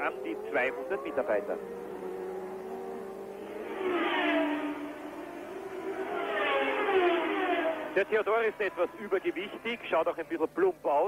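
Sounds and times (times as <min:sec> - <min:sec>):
racing car engine passing: 0:00.0 - 0:09.9.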